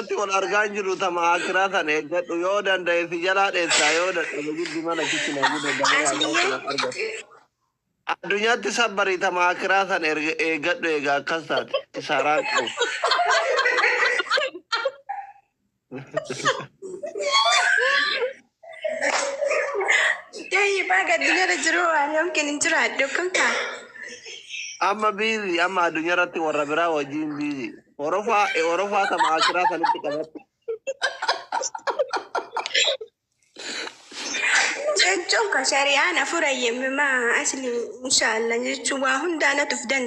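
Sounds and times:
people talking: 0:00.0 - 0:07.3, 0:08.1 - 0:15.3, 0:15.9 - 0:33.0, 0:34.8 - 0:40.0
person speaking: 0:00.0 - 0:07.4, 0:08.1 - 0:15.3, 0:15.9 - 0:22.4, 0:23.1 - 0:35.5.

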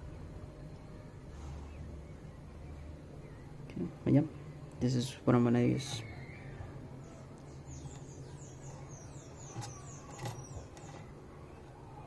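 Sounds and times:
small bird chirping: 0:01.5 - 0:12.0.

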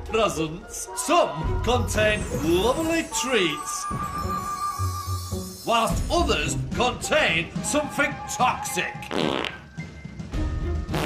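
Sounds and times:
background music: 0:00.0 - 0:11.0
comic fart sound effect: 0:09.1 - 0:09.6.

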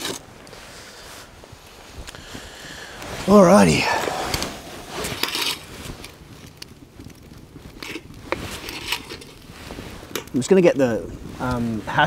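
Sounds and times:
campfire crackling: 0:00.0 - 0:12.0.

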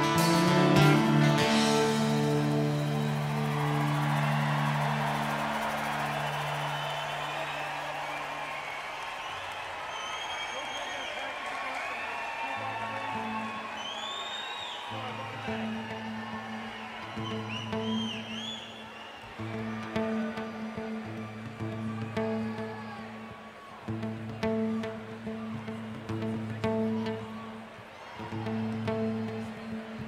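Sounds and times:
quiet band intro with bass notes: 0:00.0 - 0:05.9
concert crowd cheering: 0:00.0 - 0:30.0
loud whistles: 0:02.4 - 0:15.1, 0:16.0 - 0:19.5.

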